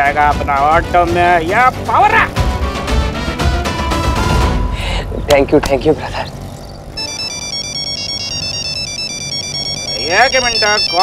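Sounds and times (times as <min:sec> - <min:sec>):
mobile phone ringtone beeps: 0:06.9 - 0:11.0.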